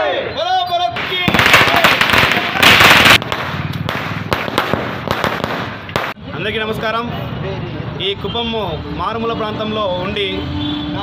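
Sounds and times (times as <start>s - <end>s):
firecrackers crackling: 0.9s - 6.3s.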